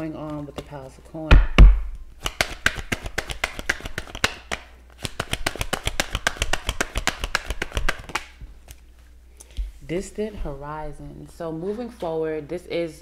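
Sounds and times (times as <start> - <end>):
cards being shuffled: 0.0 - 0.9, 2.2 - 9.1.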